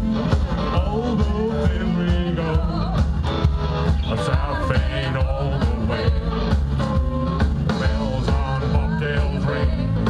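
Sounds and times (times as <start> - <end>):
drum kit beat: 0.0 - 10.0
electric guitars: 0.0 - 10.0.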